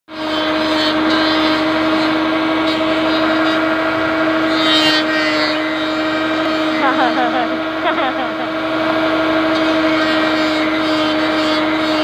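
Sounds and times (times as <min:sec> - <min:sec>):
rough noisy background: 0:00.1 - 0:12.0
steady machine hum: 0:00.1 - 0:12.0.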